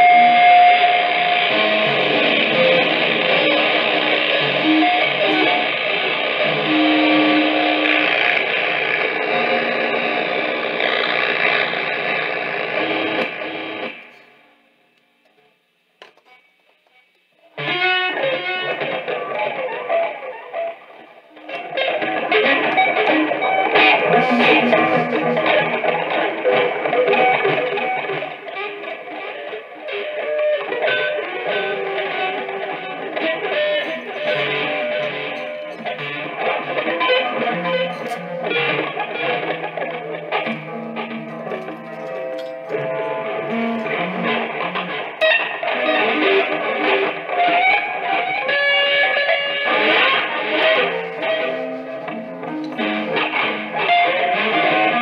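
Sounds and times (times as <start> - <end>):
noisy electric guitar improvisation: 0.0 - 55.0
rod scraping guitar strings: 23.8 - 26.0, 32.1 - 45.4, 49.7 - 53.9.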